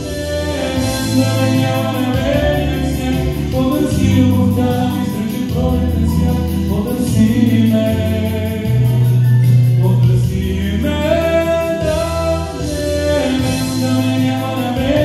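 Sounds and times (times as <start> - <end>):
bass line: 0.0 - 15.0
man singing into microphone: 0.0 - 15.0
recorded backing track: 0.0 - 15.0.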